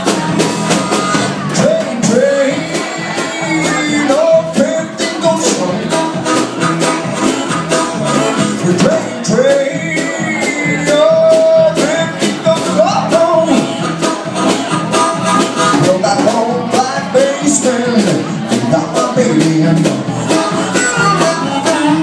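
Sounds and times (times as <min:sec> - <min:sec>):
electric guitar: 0:00.0 - 0:22.0
harmonica bending notes: 0:00.0 - 0:22.0
steady drum beat: 0:00.0 - 0:22.0.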